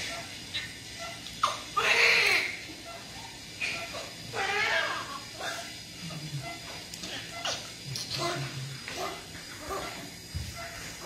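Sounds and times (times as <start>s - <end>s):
newborn baby crying: 1.4s - 2.6s, 4.3s - 5.2s.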